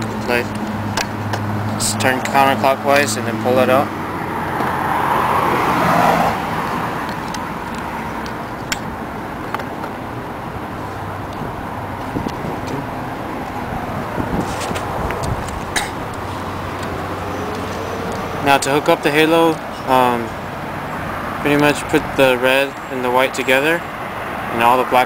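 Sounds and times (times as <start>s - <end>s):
outdoor background noise: 0.0s - 25.0s
passing traffic: 0.0s - 25.0s.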